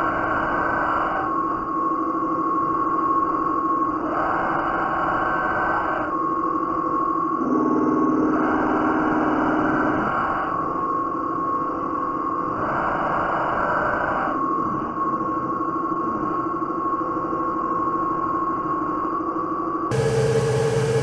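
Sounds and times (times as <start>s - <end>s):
metal lathe whining: 19.9s - 21.0s.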